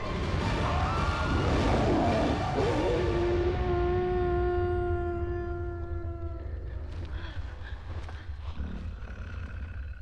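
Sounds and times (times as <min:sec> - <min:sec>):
wolf-like howl: 0:00.7 - 0:06.7.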